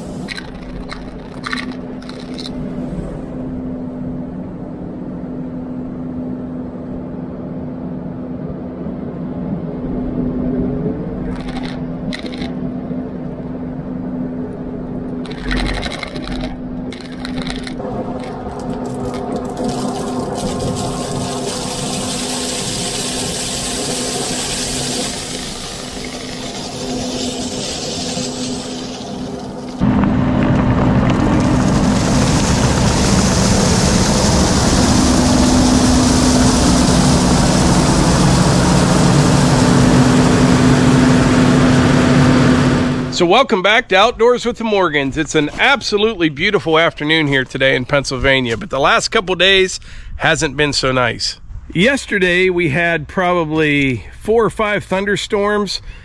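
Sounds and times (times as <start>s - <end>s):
crushed stone pouring: 0.0s - 2.9s, 11.3s - 12.5s, 15.2s - 40.2s
loader tracks: 0.0s - 4.1s, 11.1s - 49.1s
loader diesel engine running: 0.0s - 7.0s, 9.7s - 49.1s.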